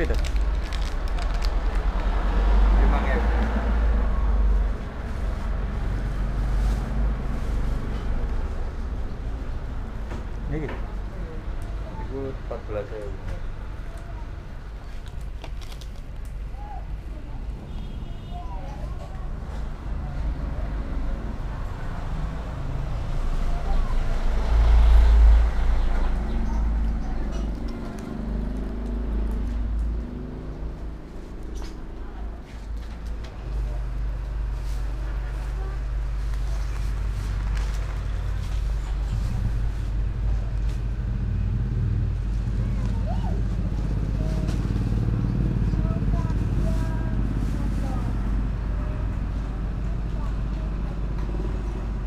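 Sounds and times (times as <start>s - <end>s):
low rumble of road traffic: 0.0s - 52.0s
vehicle passing close by: 0.8s - 9.9s, 19.3s - 52.0s.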